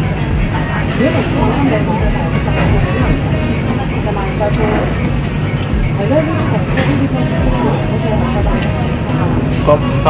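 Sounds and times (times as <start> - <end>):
background music: 0.0 - 10.0
diners' voices: 0.0 - 10.0.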